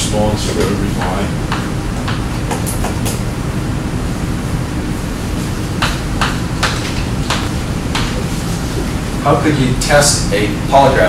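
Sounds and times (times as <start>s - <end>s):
room rumble and hiss: 0.0s - 11.0s.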